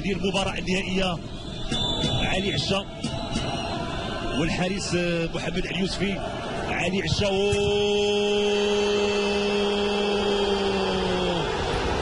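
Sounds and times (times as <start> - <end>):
stadium crowd noise: 0.0 - 12.0.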